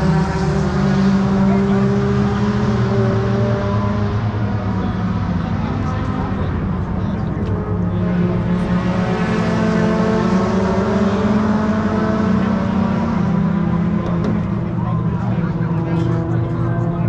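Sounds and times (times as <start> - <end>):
race car engines idling: 0.0 - 17.0.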